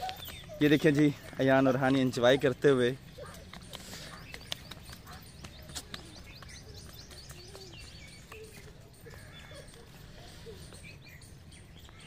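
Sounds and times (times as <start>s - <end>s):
bird chirps: 0.0s - 12.0s.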